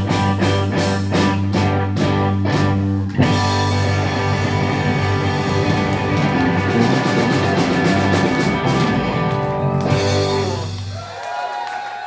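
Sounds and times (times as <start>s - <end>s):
live rock band playing: 0.0s - 11.0s
audience whooping: 5.5s - 12.0s.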